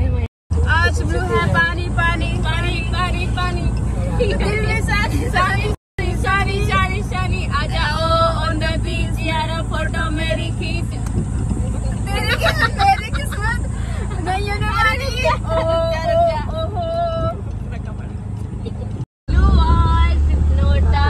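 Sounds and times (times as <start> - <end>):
auto-rickshaw engine running: 0.0 - 21.0
women singing together: 0.7 - 11.2, 12.0 - 17.4, 19.3 - 21.0.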